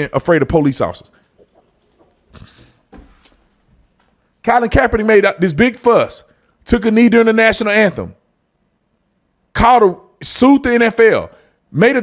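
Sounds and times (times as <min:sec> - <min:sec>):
faint breath: 0:02.3 - 0:02.9.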